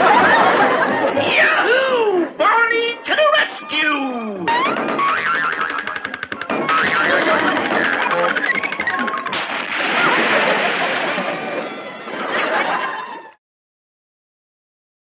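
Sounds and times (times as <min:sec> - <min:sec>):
cartoon music: 0:01.6 - 0:09.4
twanging boing of diving board: 0:04.5 - 0:09.7
water splash: 0:08.9 - 0:11.6.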